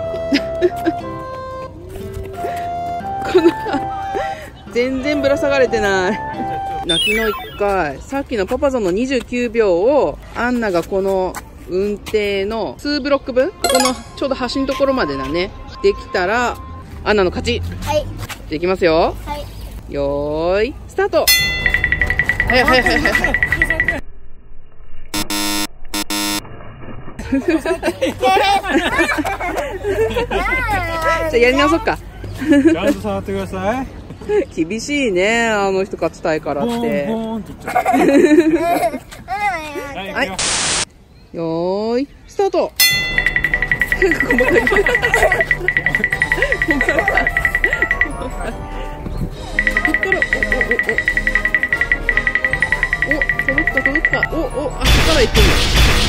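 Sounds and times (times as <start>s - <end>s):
music with rapid ticking pulse: 21.6s - 24.0s, 43.1s - 48.3s, 49.5s - 54.6s.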